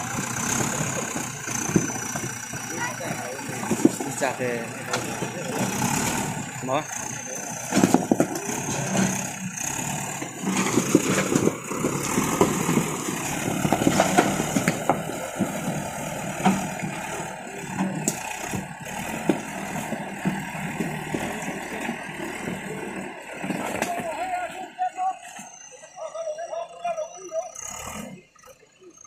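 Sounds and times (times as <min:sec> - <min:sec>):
diesel engine running: 0:00.0 - 0:29.0.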